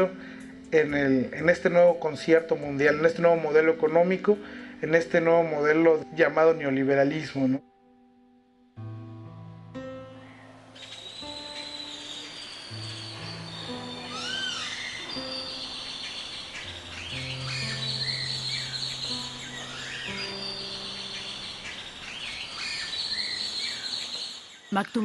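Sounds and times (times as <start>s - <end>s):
slow low background music: 0.0s - 24.3s
birds chirping and calling: 2.3s - 3.6s, 10.1s - 25.0s.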